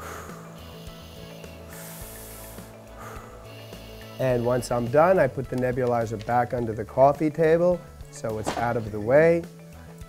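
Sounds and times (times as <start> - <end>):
breathing through nebulizer: 0.0 - 4.4
faint background music: 0.0 - 10.0.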